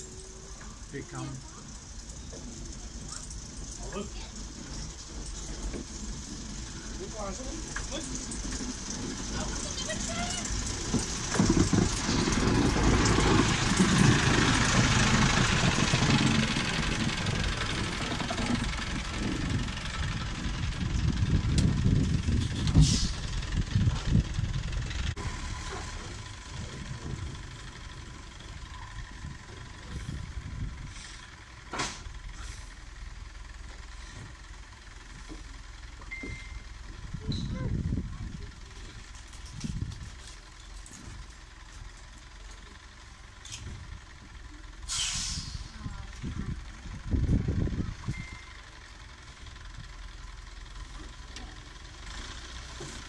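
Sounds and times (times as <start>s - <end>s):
diesel locomotive engine: 0.0s - 53.0s.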